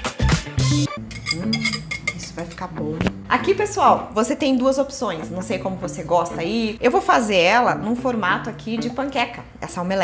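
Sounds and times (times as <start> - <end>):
whisk clinking against glass bowl: 1.1 - 2.6.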